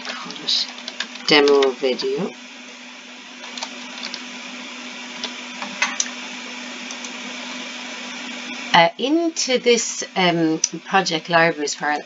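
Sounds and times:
electrical hum and hiss: 0.0s - 12.0s.

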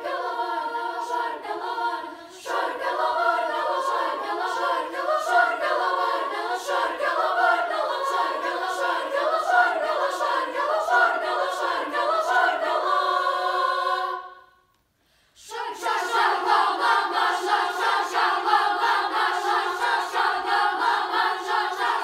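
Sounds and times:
girls' choir singing in parts: 0.0s - 14.7s, 15.4s - 22.0s.

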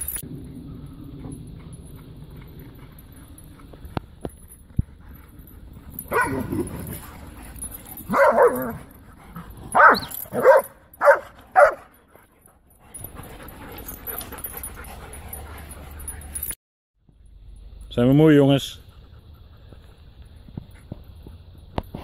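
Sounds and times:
dogs barking and yipping: 0.0s - 16.6s.

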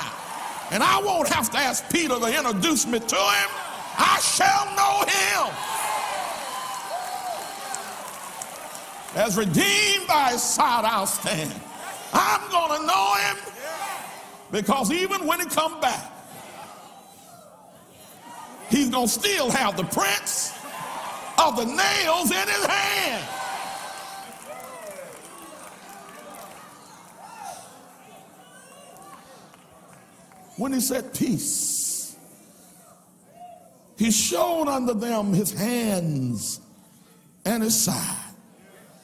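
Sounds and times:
distant congregation calling out: 0.7s - 5.6s, 9.2s - 16.8s, 21.3s - 23.4s
person preaching: 0.7s - 5.6s, 9.2s - 13.6s, 14.5s - 16.2s, 18.7s - 20.6s, 21.4s - 23.3s, 30.6s - 32.2s, 34.0s - 36.6s, 37.5s - 38.4s
crowd clapping: 3.0s - 10.3s, 22.6s - 27.6s.

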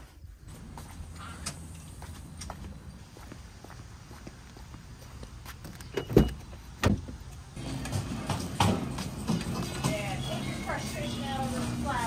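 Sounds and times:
footsteps on pavement: 0.0s - 12.0s
supermarket hubbub: 7.6s - 12.0s.

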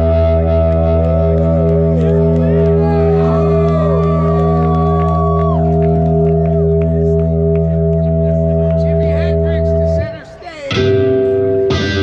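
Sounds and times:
droning guitar chord: 0.0s - 12.0s
gliding guitar tones: 0.0s - 12.0s.

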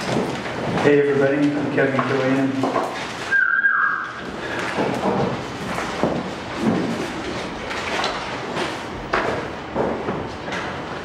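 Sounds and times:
high tone sliding downward: 3.3s - 4.2s.

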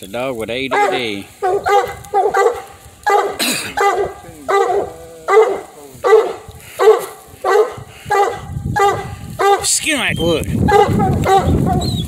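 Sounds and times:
dog barking: 0.7s - 9.7s, 10.7s - 12.0s.

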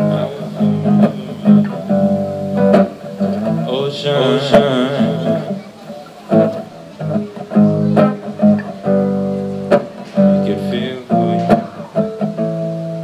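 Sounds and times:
acoustic guitar chords: 0.0s - 13.0s.

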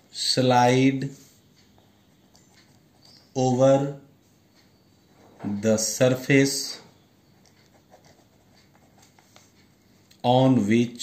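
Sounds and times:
pen writing on paper: 7.4s - 9.5s.

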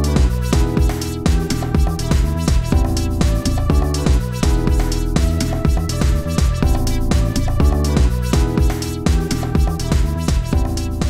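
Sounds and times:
steady drum beat: 0.0s - 11.0s
upbeat background music: 0.0s - 11.0s.

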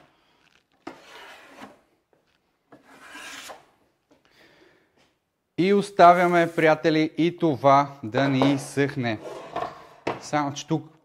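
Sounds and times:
taping knife scraping drywall: 0.8s - 1.9s, 2.7s - 3.8s.

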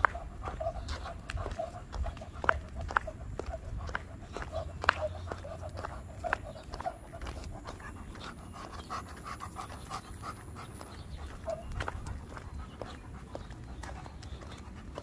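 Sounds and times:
dog panting: 0.0s - 15.0s.

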